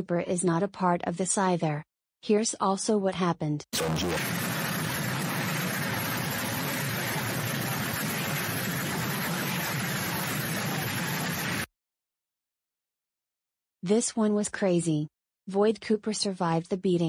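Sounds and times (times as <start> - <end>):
loud rushing noise: 3.8 - 11.7.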